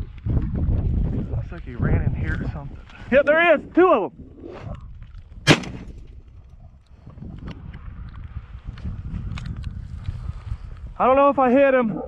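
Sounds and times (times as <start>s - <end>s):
gunshot: 5.5s - 6.0s.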